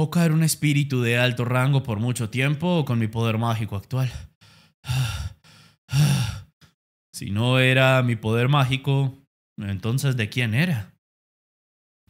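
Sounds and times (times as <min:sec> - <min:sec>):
man exhaling heavily: 0:04.4 - 0:06.5.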